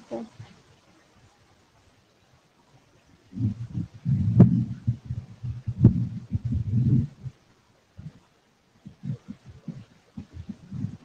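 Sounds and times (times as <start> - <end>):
microphone handling thumps: 3.3 - 7.4, 8.8 - 11.0.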